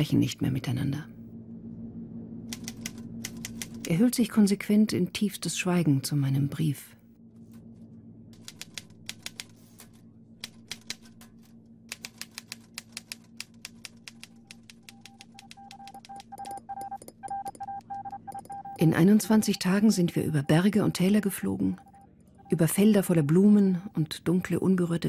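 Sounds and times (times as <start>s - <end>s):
low steady hum: 0.0s - 25.0s
typewriter keystrokes: 8.4s - 9.6s, 10.4s - 11.2s, 11.9s - 16.3s
steady beeping tone: 14.8s - 24.8s.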